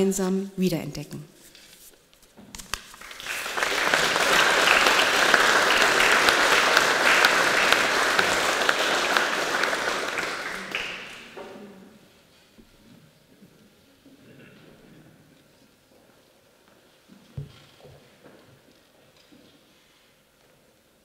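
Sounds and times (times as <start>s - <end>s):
audience applause: 2.7s - 11.6s.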